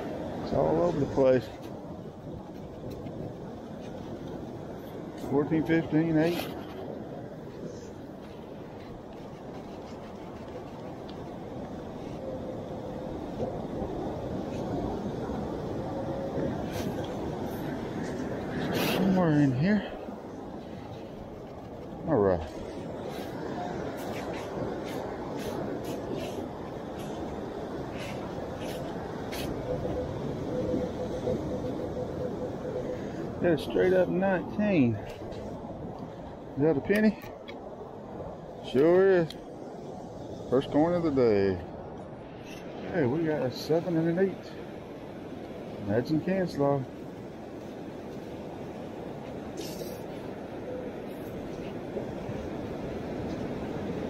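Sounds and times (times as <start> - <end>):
surf: 0.0 - 37.6
wind: 0.0 - 54.0.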